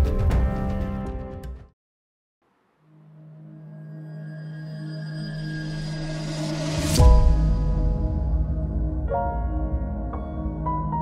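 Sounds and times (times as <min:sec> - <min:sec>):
deep hit: 0:07.0 - 0:09.2.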